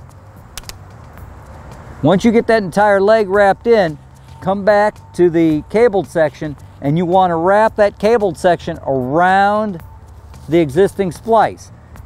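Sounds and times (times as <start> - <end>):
low outdoor rumble: 0.0 - 12.0
sharp metallic clicks: 0.5 - 1.2.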